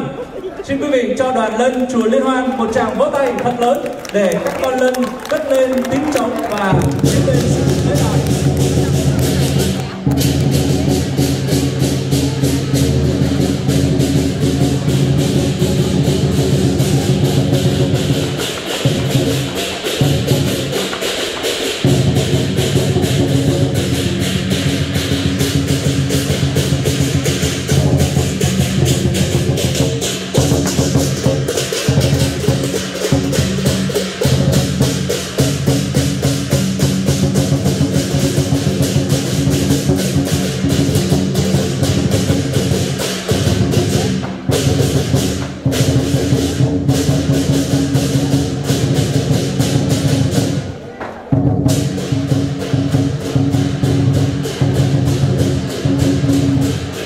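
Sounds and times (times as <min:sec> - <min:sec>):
large drum rolls: 0:05.2 - 0:57.0
clashing cymbals: 0:07.0 - 0:57.0.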